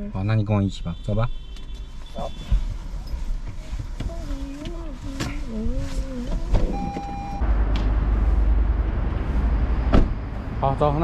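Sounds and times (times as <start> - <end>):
short electronic beep: 6.7 - 7.4.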